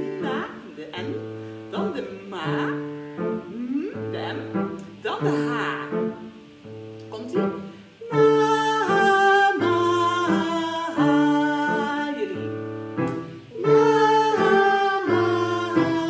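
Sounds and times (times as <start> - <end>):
person singing: 0.0 - 1.2, 7.4 - 16.0
grand piano chords: 0.0 - 16.0.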